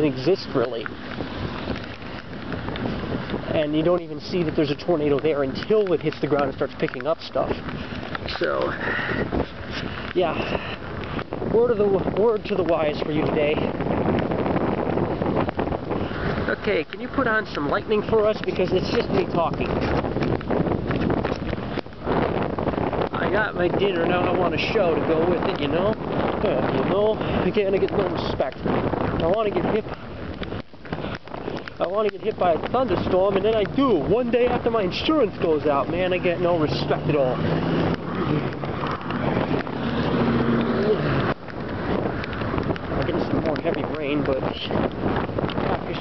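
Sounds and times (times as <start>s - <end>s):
rain hissing: 0.0s - 46.0s
wind on microphone: 0.0s - 46.0s.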